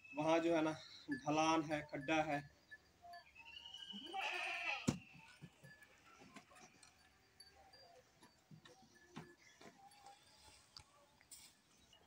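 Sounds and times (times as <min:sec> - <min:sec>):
farm animal bleating: 0:03.9 - 0:05.0.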